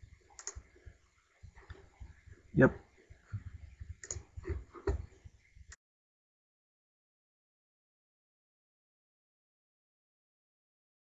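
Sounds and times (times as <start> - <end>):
computer mouse clicking: 0.3 - 0.7, 4.0 - 5.1.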